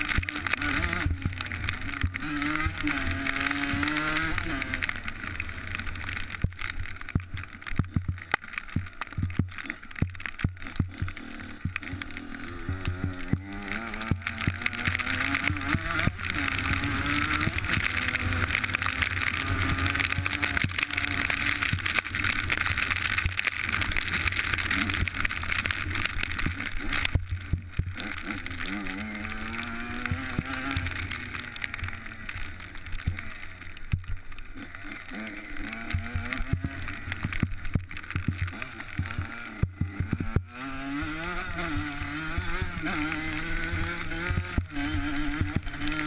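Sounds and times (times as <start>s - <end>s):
motocross bike engine: 0.0s - 46.0s
sharp clicks: 0.0s - 46.0s.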